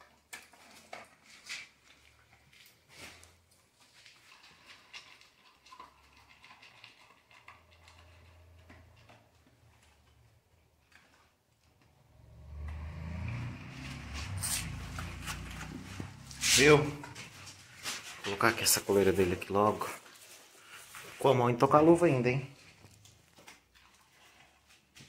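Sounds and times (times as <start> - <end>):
dog crunching kibble: 0.0 - 11.4
kibble clicking on metal bowl: 4.3 - 9.2
low rumble: 12.0 - 17.8.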